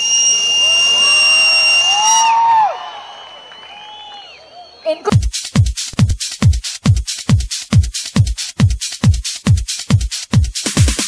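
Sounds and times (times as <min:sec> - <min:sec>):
crowd whooping: 0:00.0 - 0:05.1
shrill whistle into microphone: 0:00.0 - 0:05.1.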